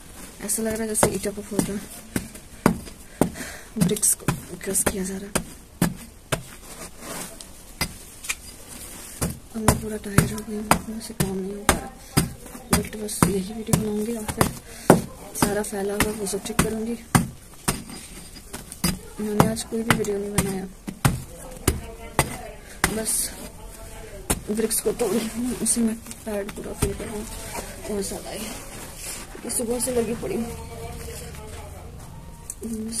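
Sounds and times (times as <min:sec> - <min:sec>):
pipe knocking on dried dirt: 0:00.5 - 0:06.6, 0:09.2 - 0:23.4.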